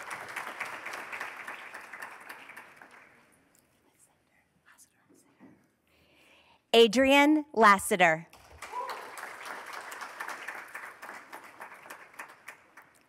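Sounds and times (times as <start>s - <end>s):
audience applauding: 0.0s - 3.3s, 8.4s - 13.0s.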